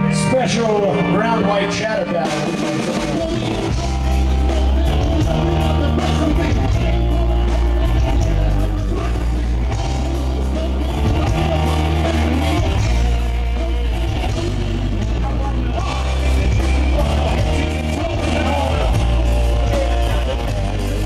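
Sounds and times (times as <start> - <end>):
lead vocal: 0.0 - 21.0
rock band playing live: 0.0 - 21.0.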